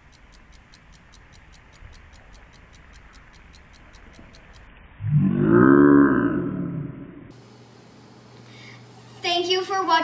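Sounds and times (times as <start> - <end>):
faint regular ticking: 0.0 - 4.7
deep drawn-out voice-like cry: 5.0 - 7.3.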